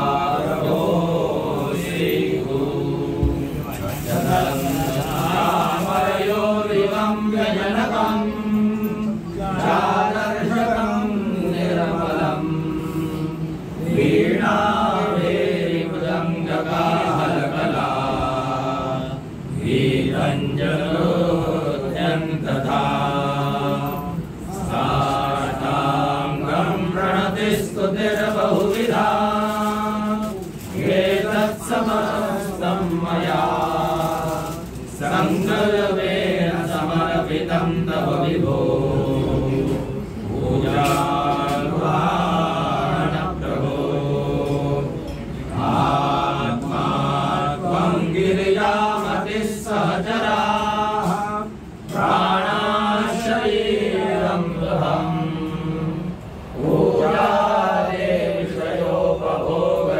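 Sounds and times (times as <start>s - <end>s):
men chanting a hymn: 0.0s - 59.9s.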